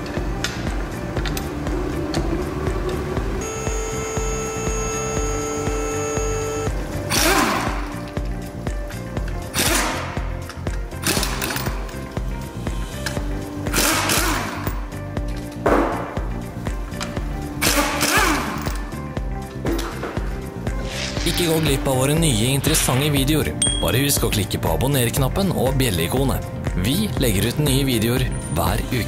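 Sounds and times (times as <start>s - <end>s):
background music with beat: 0.0s - 29.0s
impact wrench whine: 2.8s - 8.0s, 9.5s - 10.3s, 13.0s - 14.8s, 17.6s - 18.8s
impact wrench bursts: 3.4s - 8.0s, 9.5s - 10.3s, 11.0s - 11.8s, 13.0s - 14.8s, 17.6s - 18.8s.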